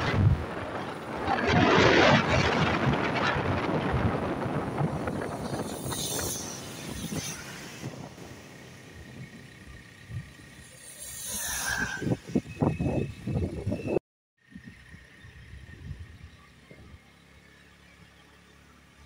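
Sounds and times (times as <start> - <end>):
tyres on wet road: 0.0 - 13.0
truck passing with spray hiss: 5.4 - 12.5.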